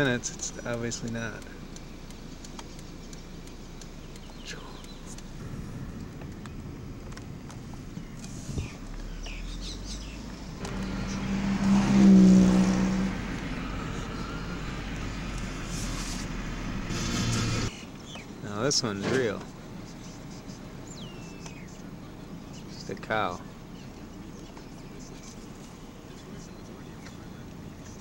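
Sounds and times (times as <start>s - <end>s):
vehicle passing by: 5.4s - 17.7s.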